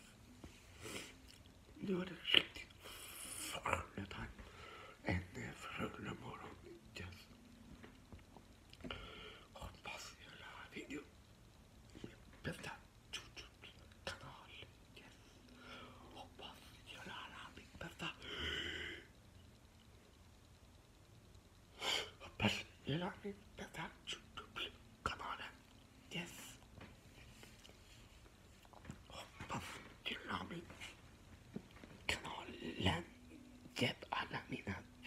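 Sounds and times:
man whispering: 1.3 - 7.9, 8.8 - 11.2, 11.9 - 19.1, 21.8 - 27.8, 28.6 - 31.1, 31.7 - 35.0.

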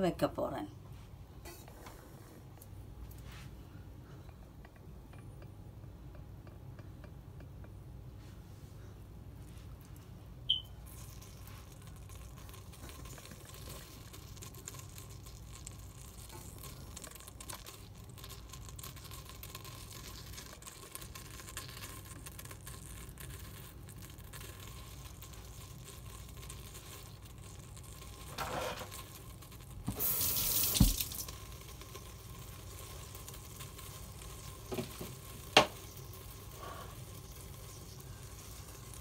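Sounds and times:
short high electronic beep: 10.5 - 10.7.

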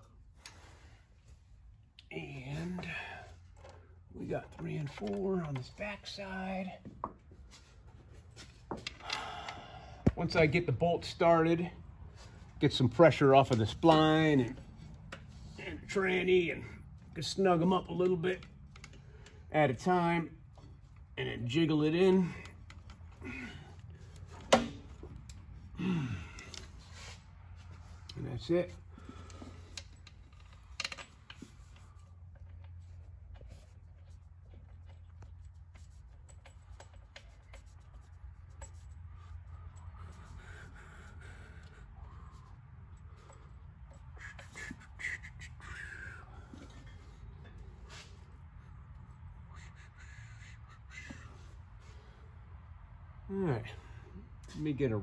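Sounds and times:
steady low hum: 0.0 - 55.0
light handling clicks and knocks: 2.8 - 6.1, 6.8 - 10.6, 17.6 - 19.5, 22.4 - 25.6, 27.7 - 39.9.

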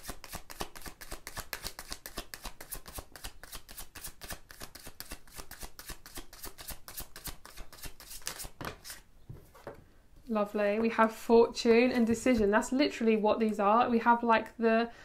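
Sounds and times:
cards being shuffled: 0.2 - 9.0.

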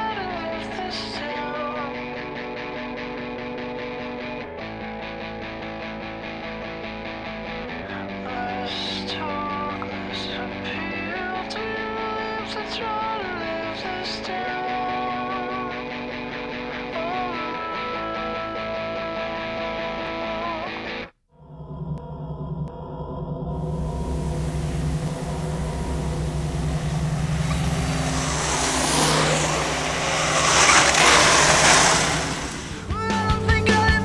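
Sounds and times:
guitar music: 23.7 - 34.0
mountainboards rolling on dirt: 24.4 - 32.9
rock music: 24.8 - 34.0.

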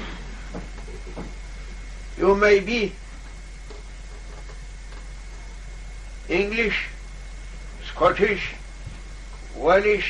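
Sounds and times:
recording hum and hiss: 0.0 - 10.0.

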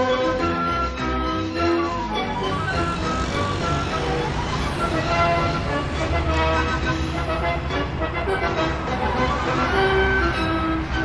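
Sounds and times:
background music: 0.0 - 11.0
road traffic passing: 0.0 - 11.0.

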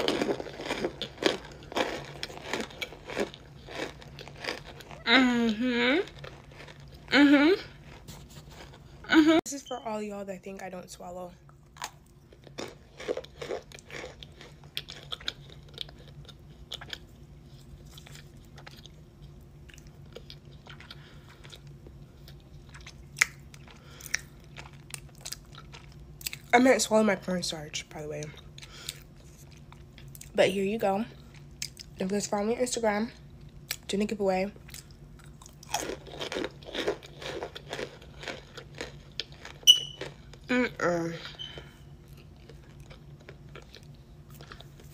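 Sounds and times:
chewing and crunching: 0.0 - 9.2, 11.4 - 27.0, 27.8 - 30.5, 31.1 - 32.4, 34.6 - 44.9.

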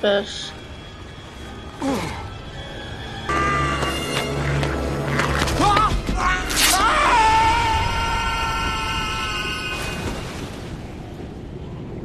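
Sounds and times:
background score music: 0.0 - 8.9.

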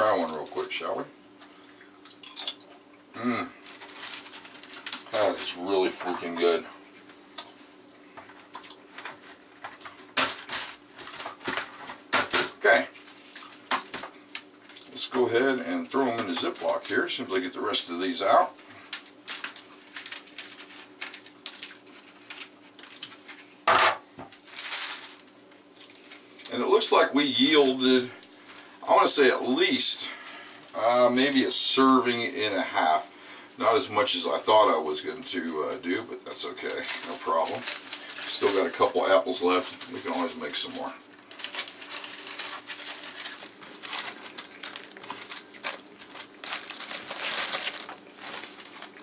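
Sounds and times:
faint steady hum: 0.0 - 49.0
apple chips crackling: 3.5 - 6.6, 8.4 - 17.3, 18.0 - 23.5, 24.3 - 26.8, 35.2 - 49.0
plastic rustle: 3.6 - 6.6, 8.2 - 17.4, 18.0 - 23.6, 24.3 - 33.0, 36.4 - 49.0.

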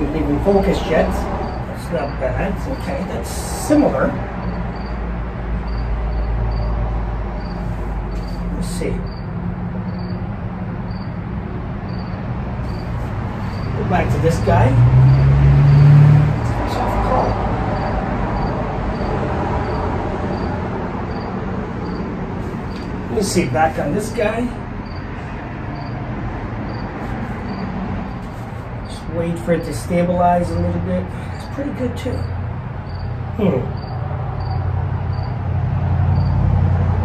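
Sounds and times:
cricket chirping: 0.0 - 36.6.

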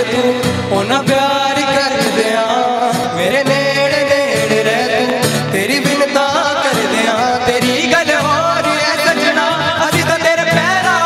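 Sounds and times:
amplified acoustic guitar: 0.0 - 11.0
man singing through a microphone: 0.0 - 11.0.

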